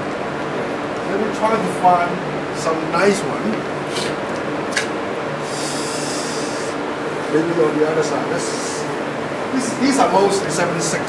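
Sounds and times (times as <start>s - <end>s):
cooling system hum: 0.0s - 11.0s.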